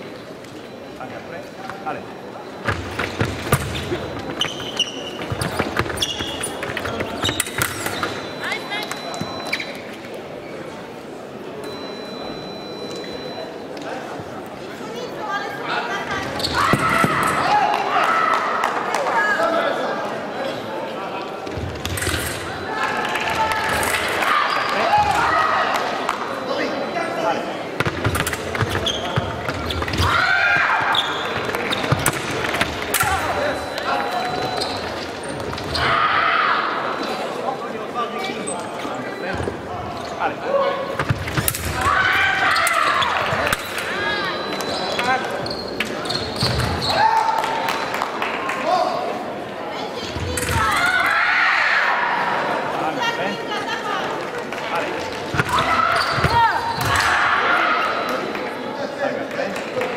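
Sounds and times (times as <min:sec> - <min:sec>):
voices and calls echoing: 0:00.0 - 0:59.9
shoe squeaks: 0:00.5 - 0:10.0, 0:16.1 - 0:17.4, 0:27.8 - 0:36.1, 0:36.8 - 0:37.4, 0:38.0 - 0:41.5, 0:42.1 - 0:47.1, 0:55.4 - 0:57.0.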